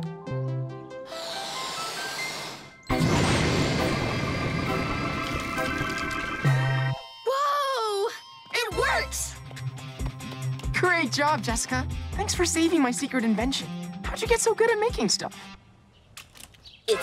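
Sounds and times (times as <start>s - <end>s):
air hissing: 1.1s - 2.8s.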